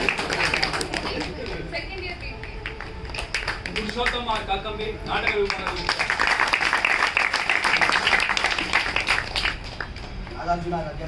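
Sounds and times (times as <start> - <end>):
audience applause: 0.0 - 1.7, 2.6 - 4.5, 5.2 - 10.2.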